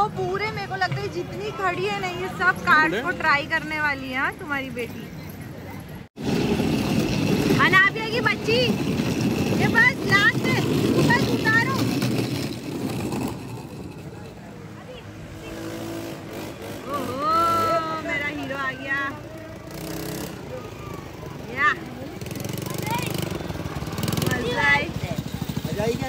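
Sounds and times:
outdoor background noise: 0.0s - 26.0s.

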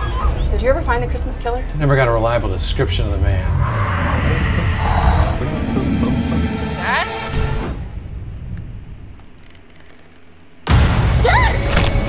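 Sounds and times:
low rumbling drone: 0.0s - 9.6s.

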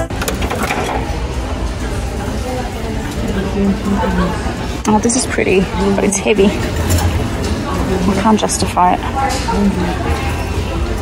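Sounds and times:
faint background voices: 1.0s - 11.0s.

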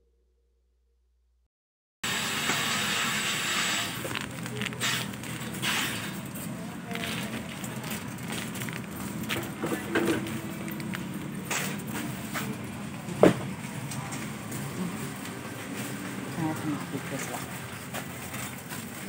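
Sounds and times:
people's voices: 3.5s - 18.7s
plastic packaging rustling: 3.6s - 11.8s.

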